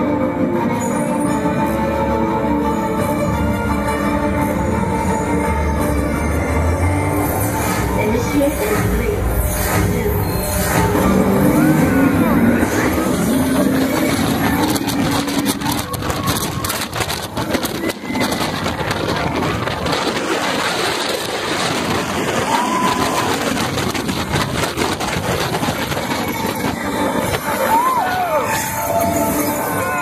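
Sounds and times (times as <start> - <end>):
roller coaster track noise: 0.0 - 30.0
wind buffeting microphone: 12.6 - 27.6.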